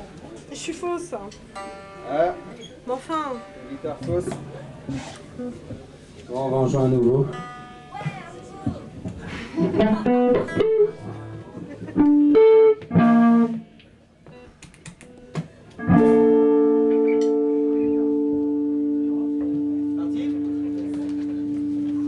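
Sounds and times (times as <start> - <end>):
electric guitar: 8.9 - 22.0.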